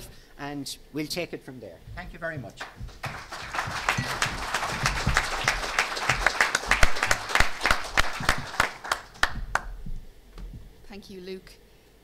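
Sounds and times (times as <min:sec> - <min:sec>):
audience applauding: 0:02.6 - 0:09.7.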